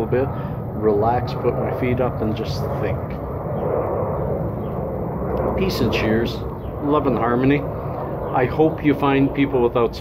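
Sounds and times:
airplane drone overhead: 0.0s - 10.0s.

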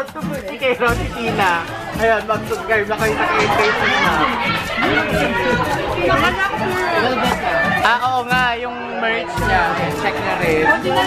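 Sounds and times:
background music: 0.0s - 11.0s
people chattering: 0.0s - 11.0s.

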